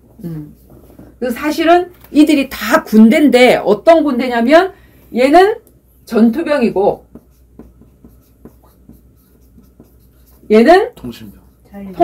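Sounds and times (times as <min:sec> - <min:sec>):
chalk tapping and scratching: 0:06.4 - 0:12.0.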